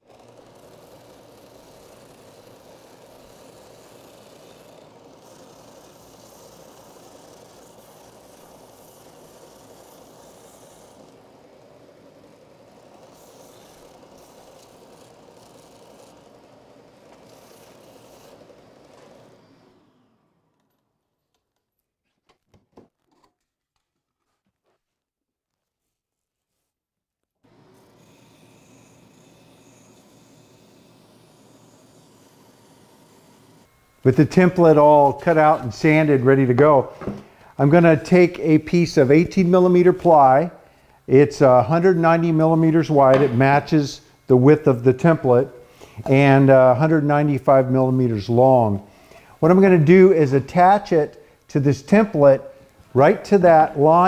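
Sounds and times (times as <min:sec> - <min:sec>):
sander sanding wood: 0:00.0 - 0:20.8, 0:27.4 - 0:54.0
faint motor hum: 0:00.0 - 0:21.5, 0:27.4 - 0:54.0.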